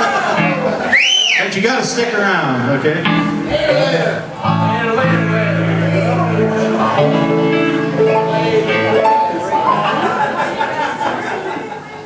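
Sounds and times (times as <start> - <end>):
band instruments holding notes: 2.6 - 10.6
guitar sustained tones: 3.0 - 10.0.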